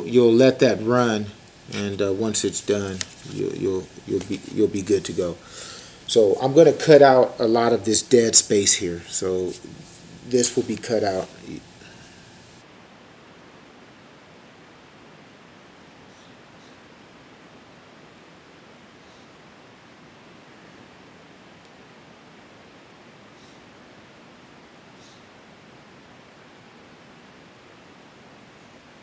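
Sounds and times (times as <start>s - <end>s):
faint microphone hiss: 0.0s - 29.0s.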